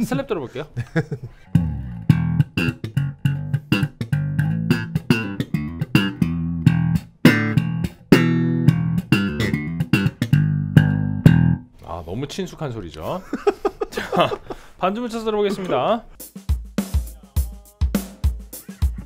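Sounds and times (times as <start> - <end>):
slap bass guitar: 1.4 - 11.7.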